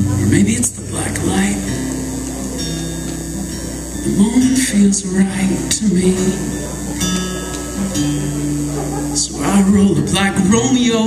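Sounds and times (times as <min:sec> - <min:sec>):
rock band sustaining low chord: 0:00.0 - 0:11.0.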